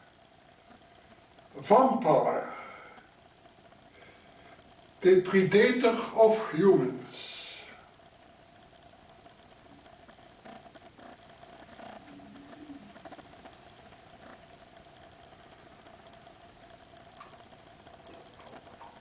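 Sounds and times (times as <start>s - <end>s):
faint steady hum: 0.0s - 19.0s
chalice clicks and knocks: 17.1s - 19.0s.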